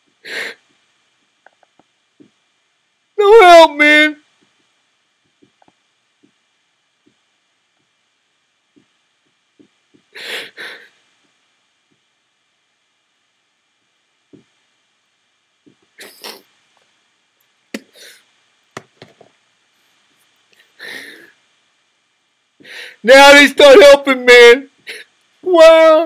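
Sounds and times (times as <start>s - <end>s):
faint steady hiss: 0.0s - 26.0s.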